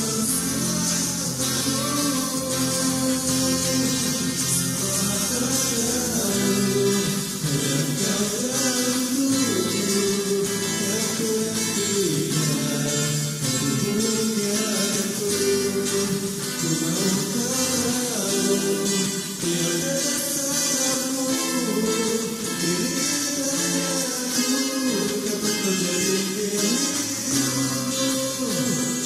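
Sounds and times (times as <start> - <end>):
acoustic guitar playing: 0.0 - 29.0.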